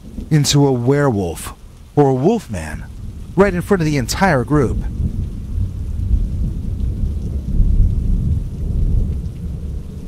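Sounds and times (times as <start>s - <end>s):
steady rain: 0.0s - 10.0s
rolling thunder rumble: 2.7s - 10.0s.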